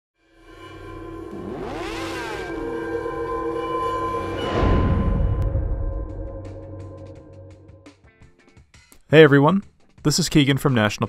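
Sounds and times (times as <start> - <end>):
synth intro music: 0.2 - 8.0
sweeping sound effect: 0.3 - 7.9.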